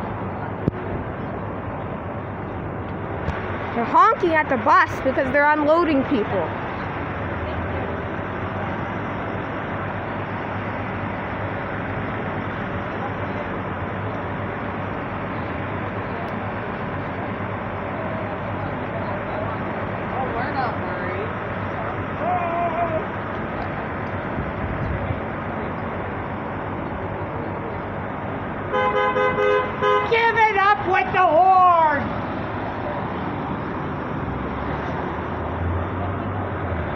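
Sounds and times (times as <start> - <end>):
idling engines and traffic: 0.0 - 36.9
car horn long blast: 28.7 - 30.3.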